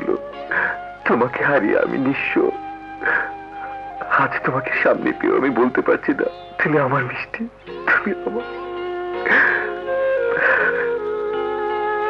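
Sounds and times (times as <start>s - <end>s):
sad background music: 0.0s - 12.0s
man speaking emotionally: 1.0s - 2.6s, 4.0s - 8.4s.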